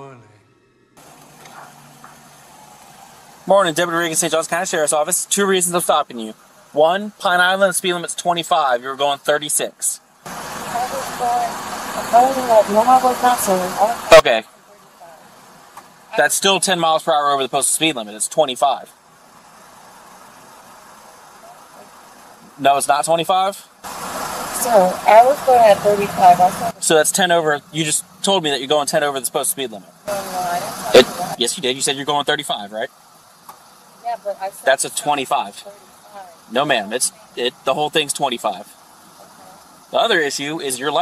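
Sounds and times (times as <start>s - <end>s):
car engine idling: 0.0s - 41.0s
microphone hiss: 0.0s - 41.0s.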